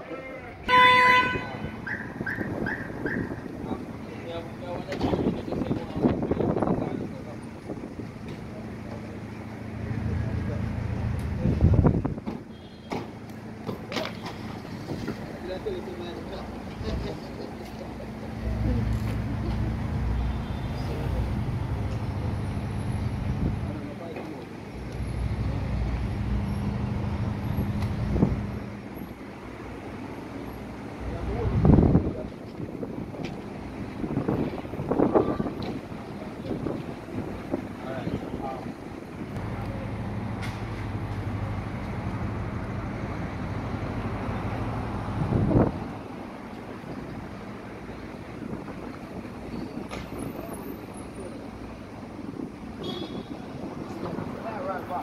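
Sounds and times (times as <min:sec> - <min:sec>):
car engines humming in traffic: 0:00.0 - 0:55.0
vehicle low rumble: 0:01.4 - 0:55.0
wind on microphone: 0:01.7 - 0:04.0, 0:04.8 - 0:08.2, 0:11.3 - 0:12.3, 0:31.2 - 0:39.4, 0:44.6 - 0:54.9.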